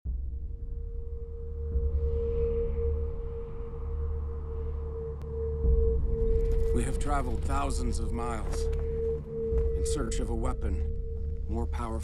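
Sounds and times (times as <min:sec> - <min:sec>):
deep rumble: 0:00.1 - 0:12.0.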